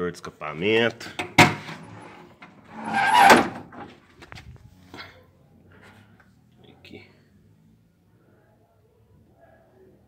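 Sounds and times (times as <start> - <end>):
engine lid scraping open: 1.2 - 4.0.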